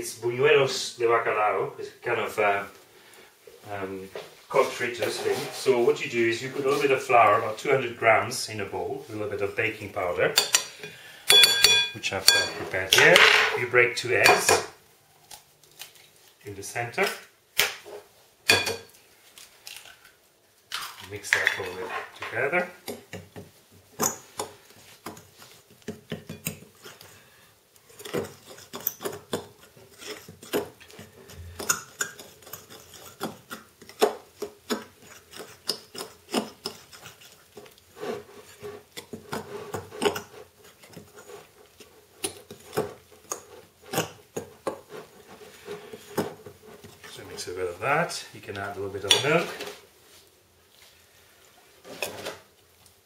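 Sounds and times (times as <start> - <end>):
fork beating batter in a bowl: 22.8 - 27.2, 27.8 - 47.5.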